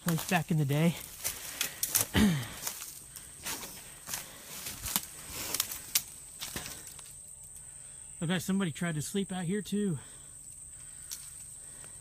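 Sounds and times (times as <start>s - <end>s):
footsteps on dirt and leaves: 0.0s - 7.2s
high-pitched insect sound: 2.6s - 12.0s.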